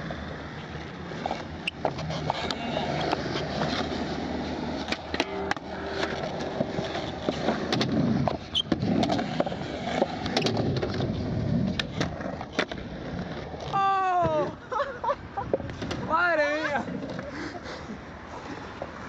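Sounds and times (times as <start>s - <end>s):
skateboard wheels rolling on concrete: 0.0s - 19.0s
skateboard clacking on ground: 0.6s - 4.0s, 4.6s - 14.6s.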